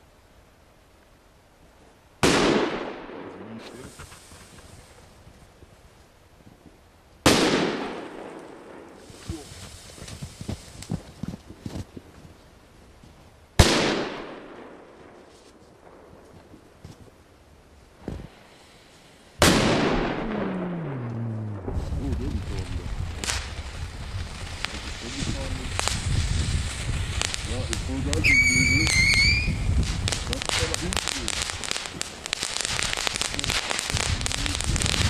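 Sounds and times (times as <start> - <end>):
firecracker bangs with echo: 2.2 - 3.9, 7.2 - 9.4, 13.6 - 15.0, 19.4 - 35.0
ground firework hissing and crackling: 3.4 - 14.2, 17.8 - 19.8, 21.6 - 35.0.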